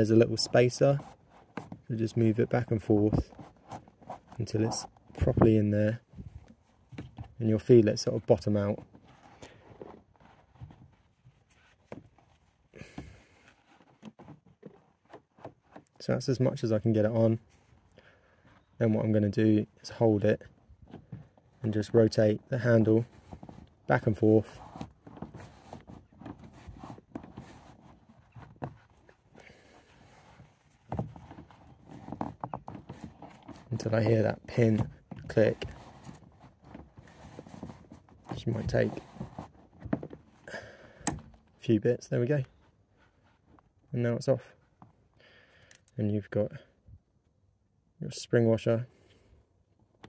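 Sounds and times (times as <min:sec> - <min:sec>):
cloth rubbing: 0:07.4 - 0:12.7, 0:22.5 - 0:40.1.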